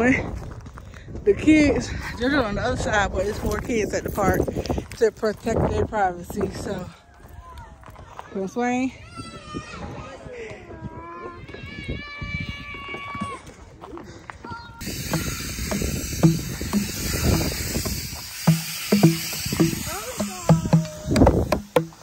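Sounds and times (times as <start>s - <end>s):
hands thumping drum pads: 15.0s - 17.5s, 18.5s - 22.0s.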